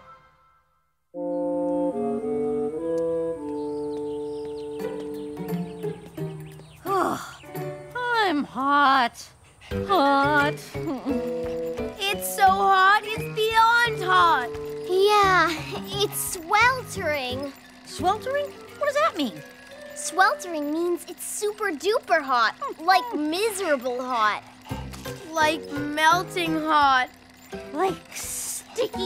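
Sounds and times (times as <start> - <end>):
cartoon music held chords: 0.0 - 8.3.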